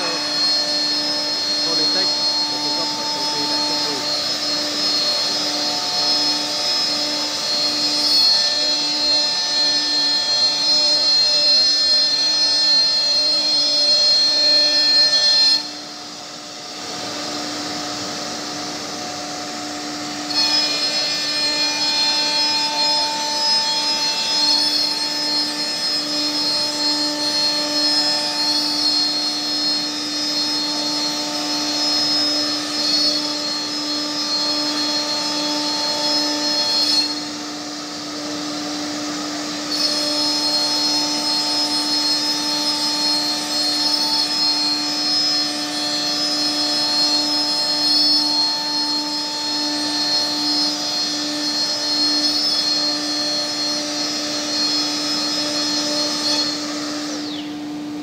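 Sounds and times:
cnc router whining: 0:00.0 - 0:58.0.

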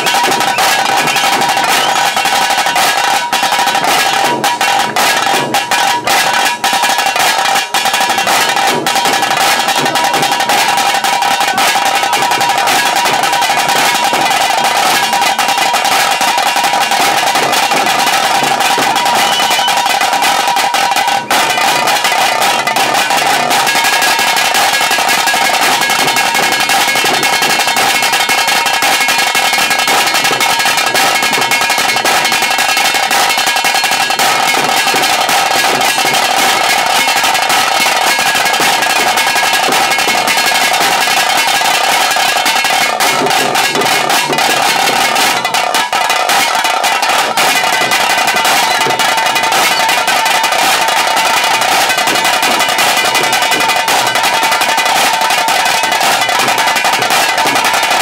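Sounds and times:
fast dense drumming: 0:00.0 - 0:58.0.

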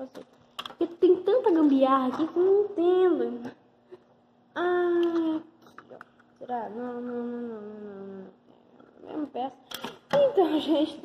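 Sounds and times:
boy speaking: 0:00.0 - 0:03.6, 0:04.5 - 0:05.6, 0:06.4 - 0:08.4, 0:09.0 - 0:11.0.

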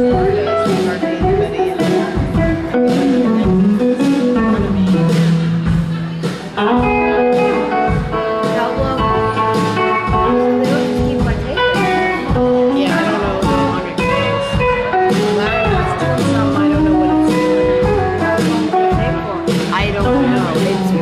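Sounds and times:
bass guitar: 0:00.0 - 0:21.0
drum kit: 0:00.0 - 0:21.0
electric guitar lead: 0:00.0 - 0:21.0.

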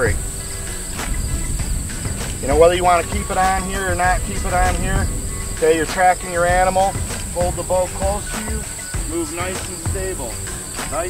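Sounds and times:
low rumble: 0:00.0 - 0:09.3
crickets chirring: 0:00.0 - 0:11.0.

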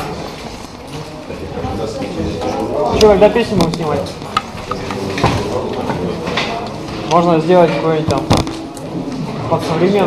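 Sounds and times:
people chatting indistinctly: 0:00.0 - 0:10.0.

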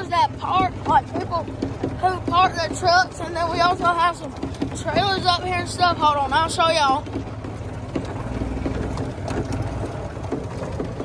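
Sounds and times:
golf cart rumbling: 0:00.0 - 0:11.0
light rattles: 0:00.0 - 0:11.0.

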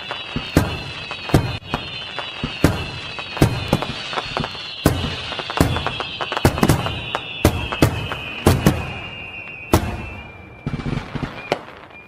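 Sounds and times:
fireworks banging: 0:00.0 - 0:12.0
high falling whistle: 0:00.0 - 0:12.0.

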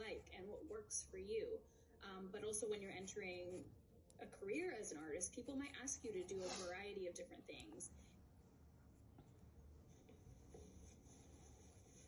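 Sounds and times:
low background hum: 0:00.0 - 0:12.0
pencil scratching on paper: 0:09.6 - 0:12.0.

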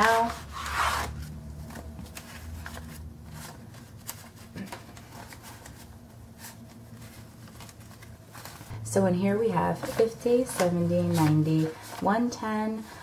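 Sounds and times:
banknotes rustling and flicking: 0:00.0 - 0:08.8, 0:09.4 - 0:13.0.

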